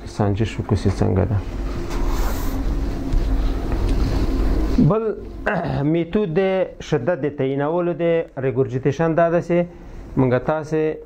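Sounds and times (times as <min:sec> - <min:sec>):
low steady rumble: 0:00.0 - 0:10.7.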